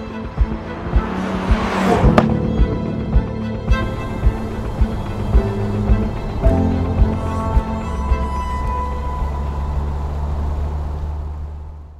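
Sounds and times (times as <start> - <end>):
car engine humming: 0.0 - 11.9.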